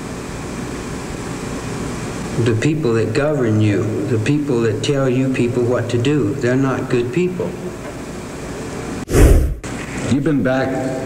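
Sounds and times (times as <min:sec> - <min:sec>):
loud short burst of noise: 0:09.1 - 0:09.6.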